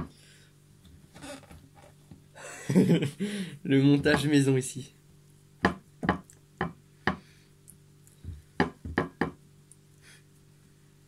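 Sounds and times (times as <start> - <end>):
sharp knocks on ceramic plate: 5.6 - 7.2, 8.6 - 9.4.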